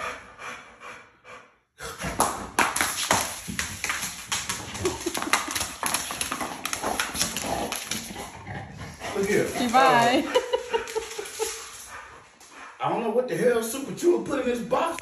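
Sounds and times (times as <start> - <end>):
dog claws tapping on floor: 2.0 - 8.4, 9.0 - 11.9.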